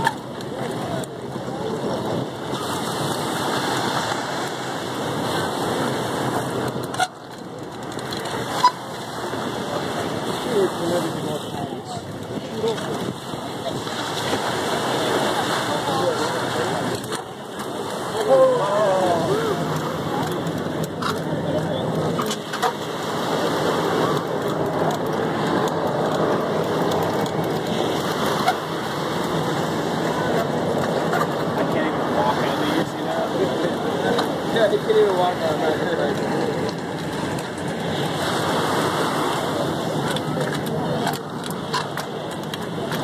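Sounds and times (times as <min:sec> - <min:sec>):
waves breaking on shore: 0:00.0 - 0:43.0.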